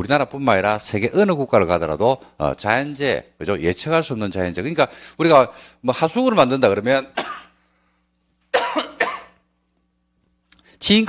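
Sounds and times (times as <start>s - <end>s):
man coughing: 7.1s - 7.6s, 8.5s - 9.4s.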